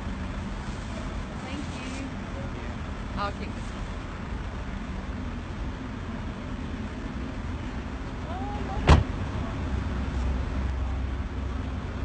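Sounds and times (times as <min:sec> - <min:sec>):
car door shutting: 0:08.8 - 0:09.2.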